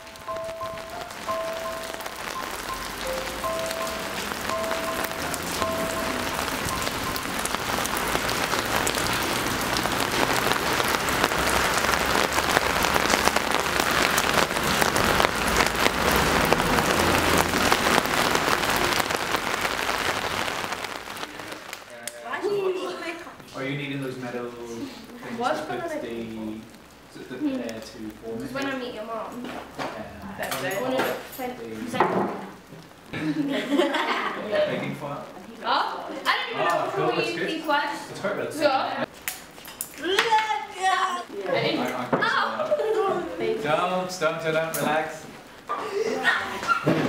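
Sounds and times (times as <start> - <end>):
soft high musical notes: 0.0 - 7.7
heavy rain on pavement: 0.0 - 47.0.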